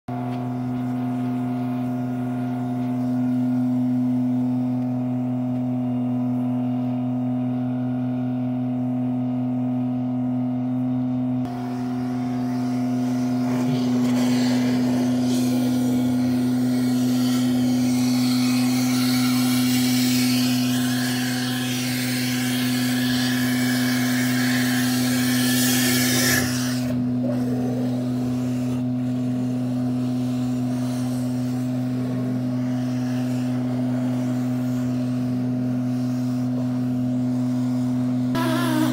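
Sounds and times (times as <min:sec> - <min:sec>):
suction pump humming: 0:00.1 - 0:38.9.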